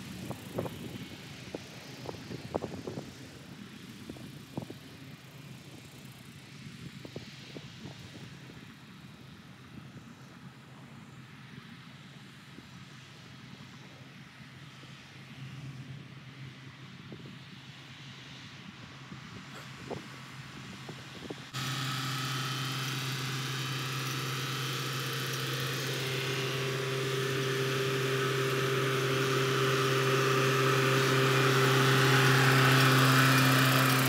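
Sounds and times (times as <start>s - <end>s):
distant tractor engine hum: 0.0s - 34.0s
open-air noise: 0.0s - 34.0s.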